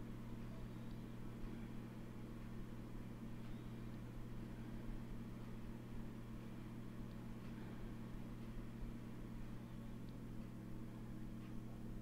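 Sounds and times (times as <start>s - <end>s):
low hum with faint hiss: 0.0s - 12.0s.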